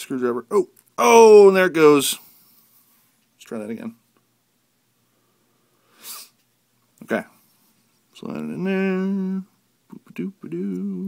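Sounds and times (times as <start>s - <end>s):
person exhaling through nose: 5.8s - 6.4s.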